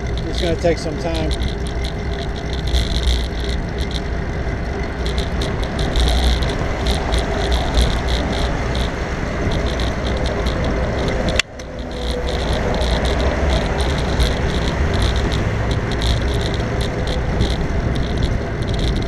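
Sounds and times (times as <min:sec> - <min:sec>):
bicycle tyre noise: 0:00.0 - 0:19.0
bike clicks and rattles: 0:00.0 - 0:19.0
wind buffeting microphone: 0:00.0 - 0:19.0.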